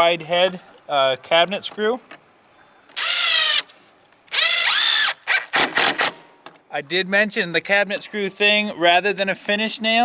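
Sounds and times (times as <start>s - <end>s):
cordless drill driving screws: 3.0s - 3.7s, 4.3s - 6.2s.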